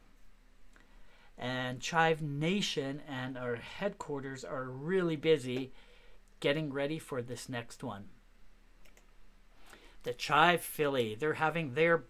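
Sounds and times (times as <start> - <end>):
faint computer clicks: 8.8 - 9.2.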